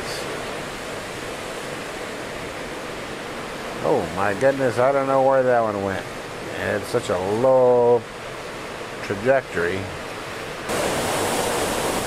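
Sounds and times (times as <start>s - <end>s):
strong wind rushing through trees: 0.0s - 12.0s.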